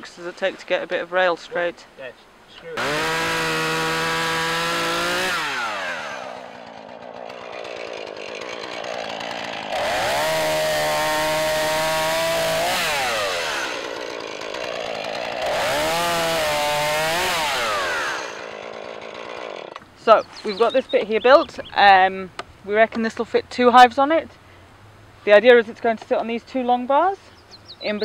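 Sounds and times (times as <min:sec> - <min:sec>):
chainsaw revving and idling: 0:02.6 - 0:21.5.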